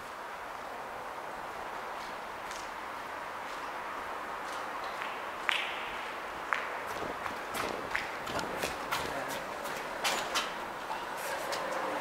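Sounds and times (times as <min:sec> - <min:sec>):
footsteps on concrete: 0:04.4 - 0:11.8.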